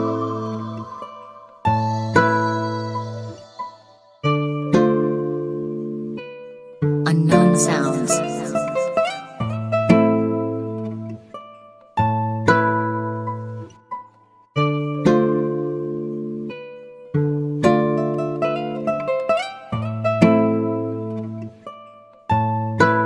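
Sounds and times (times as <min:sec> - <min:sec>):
slow guitar instrumental: 0:00.0 - 0:23.0.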